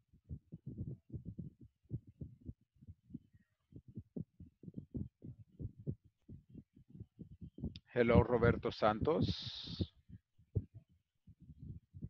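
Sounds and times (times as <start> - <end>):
muffled low thumps: 0.1 - 12.0
faint steady hiss: 7.7 - 9.9.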